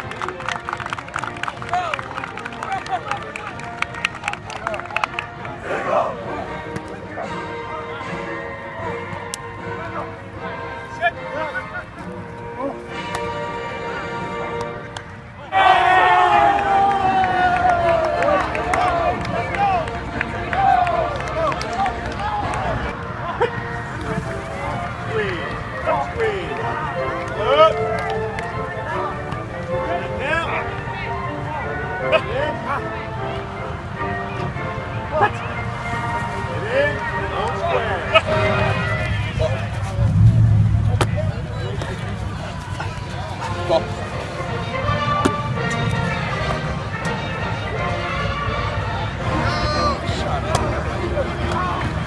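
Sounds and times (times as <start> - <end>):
background music: 0.0 - 52.0
steady background noise: 0.0 - 52.0
people calling out: 4.6 - 12.9, 49.2 - 50.5
distant voices: 34.3 - 52.0.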